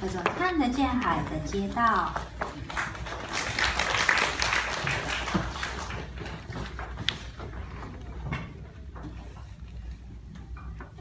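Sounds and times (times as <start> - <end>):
audience applauding: 2.4 - 6.6.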